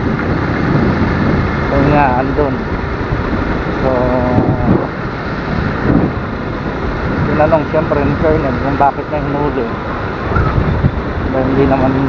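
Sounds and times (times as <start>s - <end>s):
engine and road rumble: 0.0s - 12.0s
wind buffeting microphone: 0.0s - 12.0s.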